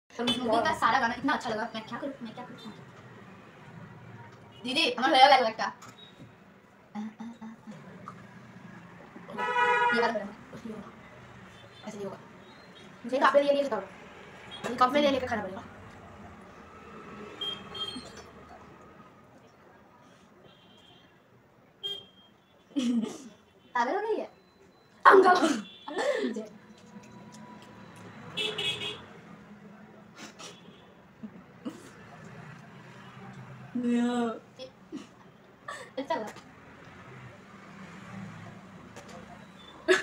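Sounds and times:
vehicle horn toot: 0:09.4 - 0:10.0, 0:17.4 - 0:18.2, 0:21.8 - 0:22.6, 0:28.3 - 0:29.1.

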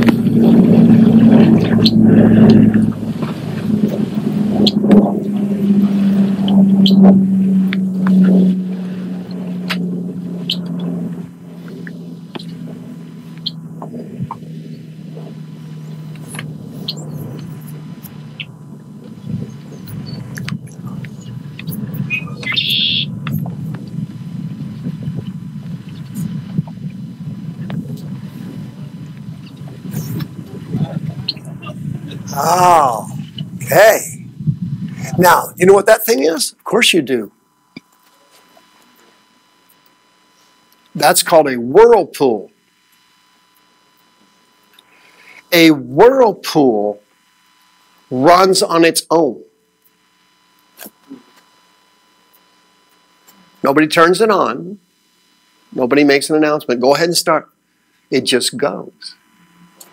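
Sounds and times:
low rumbling drone: 0:00.0 - 0:37.8
short higher sound: 0:00.8 - 0:11.5.

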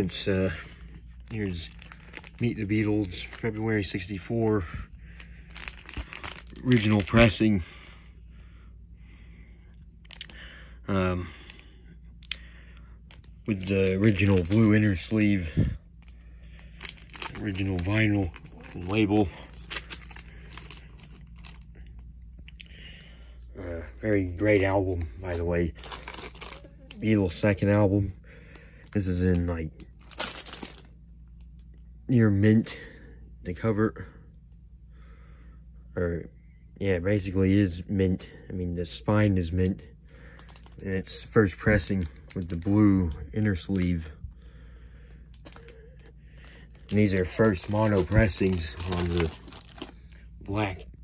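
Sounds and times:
rustling of plastic sleeves: 0:00.0 - 0:07.8, 0:11.3 - 0:23.4, 0:24.2 - 0:31.8, 0:39.6 - 0:50.6
low steady hum: 0:00.0 - 0:51.0.

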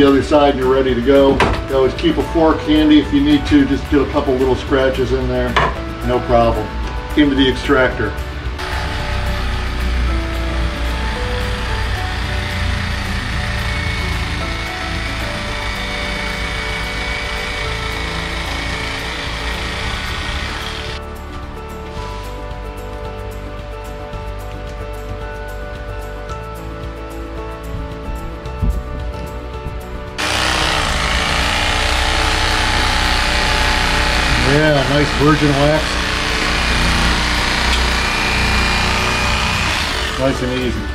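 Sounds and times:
electric carving knife running: 0:08.5 - 0:21.0, 0:30.2 - 0:40.9.

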